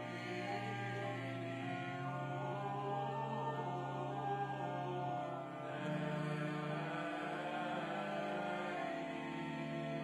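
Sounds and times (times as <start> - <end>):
pipe organ: 0.0 - 10.0
voices singing a hymn: 0.0 - 10.0.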